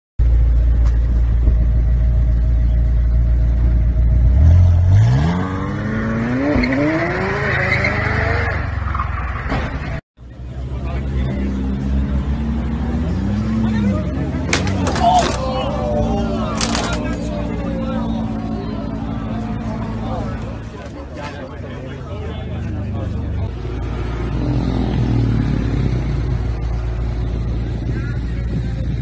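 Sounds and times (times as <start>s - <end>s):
car engine idling and revving: 0.2s - 29.0s
sports car engine accelerating: 10.5s - 14.8s, 15.4s - 29.0s
tyre noise: 13.9s - 17.4s.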